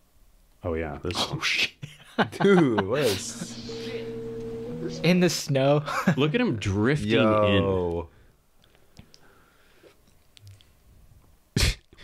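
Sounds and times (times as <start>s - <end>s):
person sneezing: 11.6s - 12.0s.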